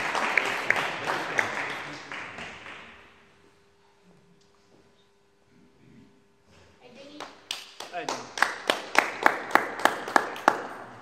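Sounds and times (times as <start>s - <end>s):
hand clapping: 0.0s - 3.2s, 7.2s - 11.0s.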